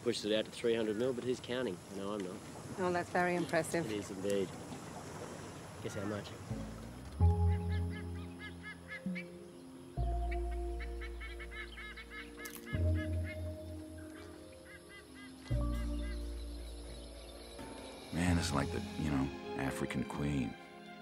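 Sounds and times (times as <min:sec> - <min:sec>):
wetland birds honking: 0:05.2 - 0:20.6
film score low notes: 0:06.2 - 0:21.0.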